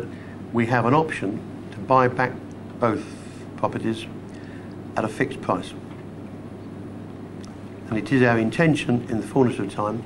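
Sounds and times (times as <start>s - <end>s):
man speaking: 0.0s - 4.2s, 5.0s - 5.8s, 7.8s - 10.0s
background hiss with low hum: 0.0s - 10.0s.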